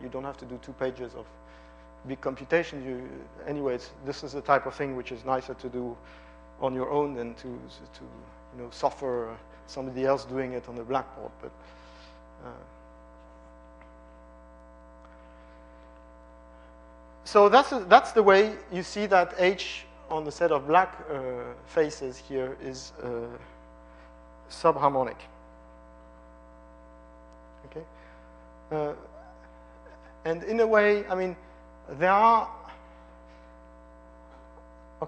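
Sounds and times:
person speaking: 0:00.0 - 0:01.3, 0:02.0 - 0:06.0, 0:06.6 - 0:11.6, 0:17.2 - 0:23.5, 0:24.5 - 0:25.4, 0:28.7 - 0:32.8
electrical mains hum: 0:00.0 - 0:35.0.

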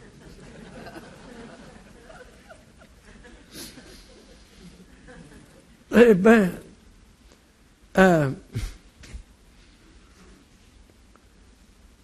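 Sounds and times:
audience laughing: 0:00.0 - 0:05.8
breathy hiss: 0:03.4 - 0:04.9.

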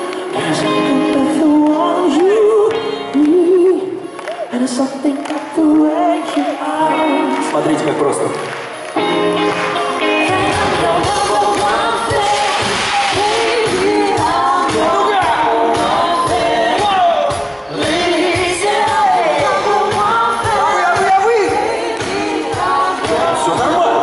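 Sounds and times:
wordless sung vocal: 0:00.0 - 0:07.5, 0:10.1 - 0:24.0
loud live pop music: 0:00.0 - 0:24.0.

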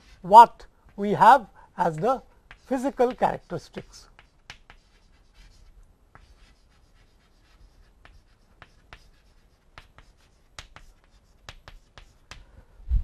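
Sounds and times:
chalk tapping and scratching: 0:00.0 - 0:12.5.

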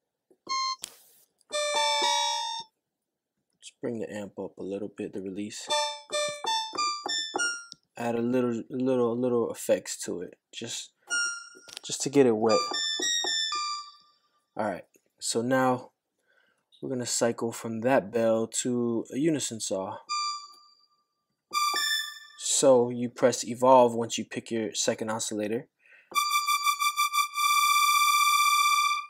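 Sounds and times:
synthesizer bell notes: 0:00.5 - 0:00.8, 0:01.5 - 0:02.7, 0:05.7 - 0:07.7, 0:12.4 - 0:14.2, 0:21.5 - 0:22.4, 0:26.2 - 0:29.0.

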